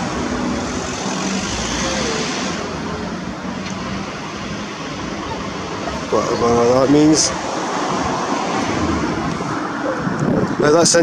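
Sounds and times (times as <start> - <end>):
vehicles passing: 0.0 - 11.0.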